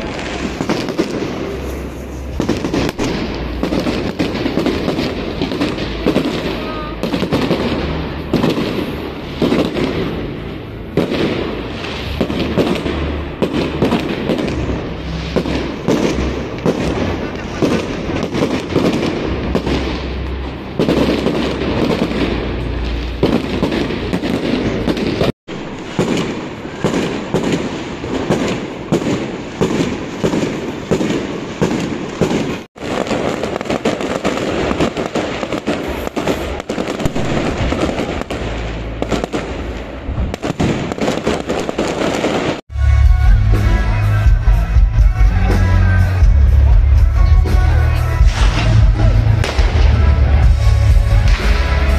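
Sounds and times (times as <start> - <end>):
fireworks bangs and crackles: 0.0 - 51.9.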